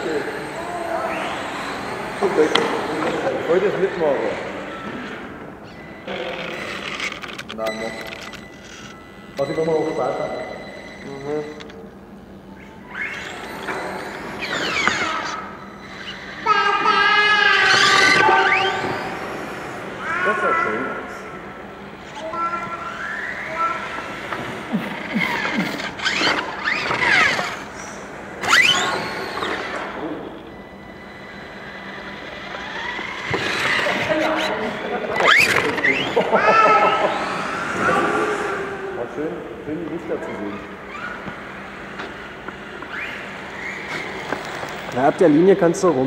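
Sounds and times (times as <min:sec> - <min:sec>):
model car motor whine: 0:00.0 - 0:46.0.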